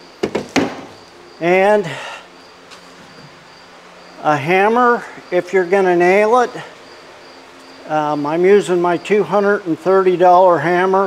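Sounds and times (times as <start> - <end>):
high-pitched insect drone: 0.8 - 11.0.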